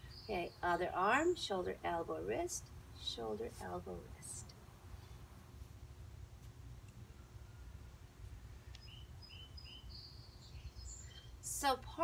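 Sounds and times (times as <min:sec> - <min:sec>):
bird chirping: 0:00.0 - 0:01.6, 0:08.6 - 0:11.6
bird trill: 0:08.8 - 0:11.4.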